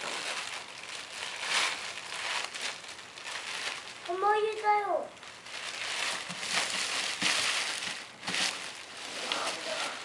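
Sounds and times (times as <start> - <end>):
gift bag rustling and crinkling: 0.0 - 10.0.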